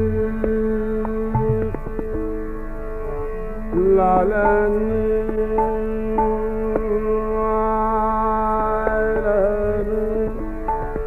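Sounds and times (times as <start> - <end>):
low tabla stroke: 0.0 - 7.4
man singing classical vocal: 0.0 - 11.0
tanpura drone: 0.0 - 11.0.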